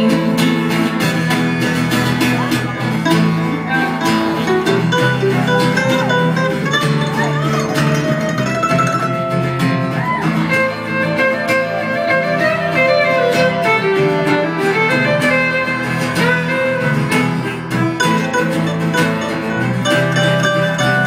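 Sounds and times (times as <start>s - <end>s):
fiddle playing melody: 0.0s - 21.0s
mandolin: 0.0s - 21.0s
strummed acoustic guitar: 0.0s - 21.0s.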